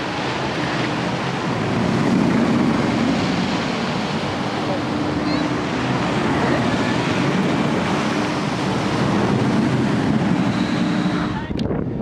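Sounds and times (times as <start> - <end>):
roller coaster train on steel track: 0.0 - 12.0.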